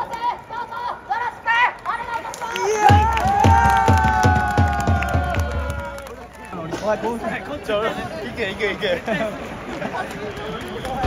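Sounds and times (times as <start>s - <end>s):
music with fast drumbeat: 2.9s - 5.7s.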